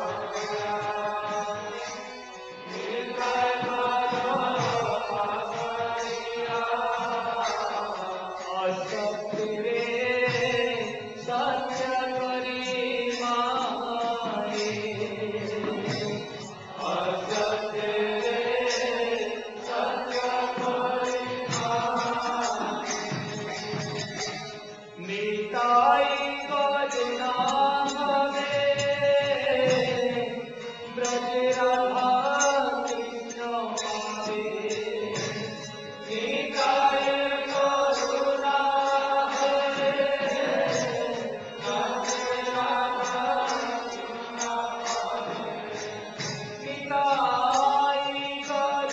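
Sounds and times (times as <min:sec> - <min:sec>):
devotional chanting: 0:00.0 - 0:48.9.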